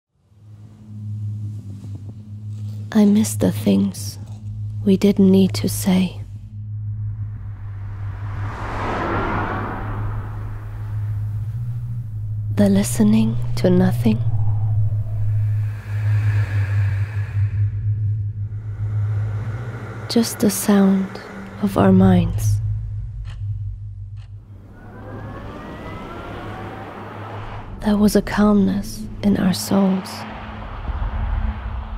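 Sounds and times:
steady low drone: 0.1 - 31.9
steady low hum: 0.2 - 31.9
car passing with tyre whoosh: 6.8 - 12.6, 13.3 - 17.8, 18.4 - 22.0, 24.4 - 27.9, 29.0 - 31.9
electric motor whine: 24.5 - 27.7.

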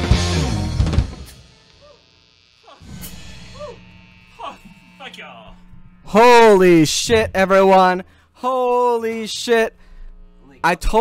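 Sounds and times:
low electrical hum: 2.2 - 11.0.

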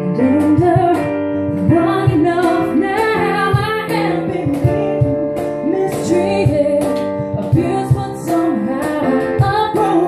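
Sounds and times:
electronic keyboard chords: 0.0 - 10.0
woman singing into a microphone: 0.0 - 10.0
steady low beat: 0.6 - 8.1.

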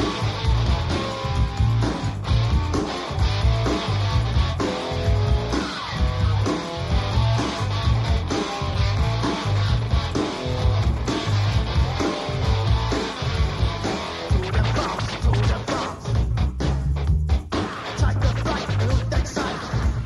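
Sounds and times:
bass guitar repeating figure: 0.0 - 20.0
drums: 0.0 - 20.0
electric guitar: 0.0 - 20.0.

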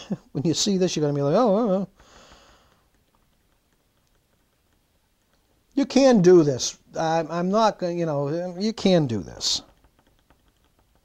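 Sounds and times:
stirrer ticking in glass bottle: 1.3 - 6.4, 8.5 - 11.0.

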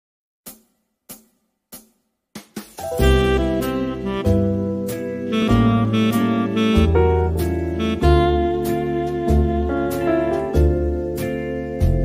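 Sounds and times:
sharp percussion strikes: 0.5 - 4.3.

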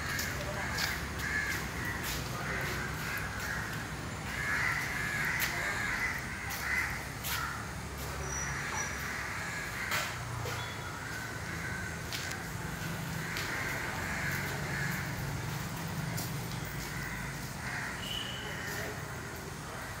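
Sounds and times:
birds with harsh calls: 0.0 - 15.5, 16.2 - 19.0.

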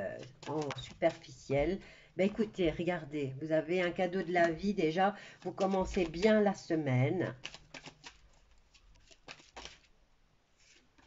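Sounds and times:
cards shuffled by hand: 0.0 - 2.7, 4.1 - 6.6, 7.2 - 10.0, 10.6 - 11.0.

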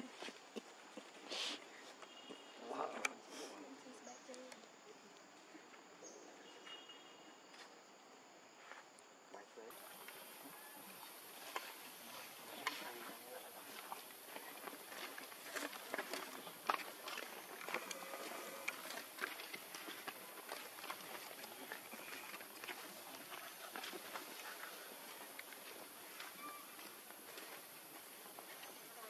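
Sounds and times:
monkeys tapping and rustling: 9.7 - 29.0.

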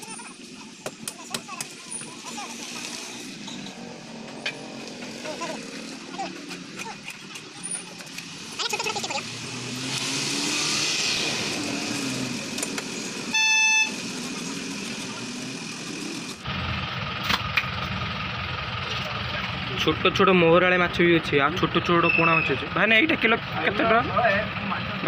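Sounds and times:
traffic noise: 0.0 - 25.0
vehicle horn honking: 13.3 - 14.0.

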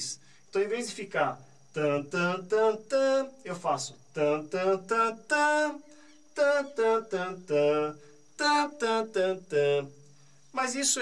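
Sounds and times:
man singing notes: 0.6 - 11.0.

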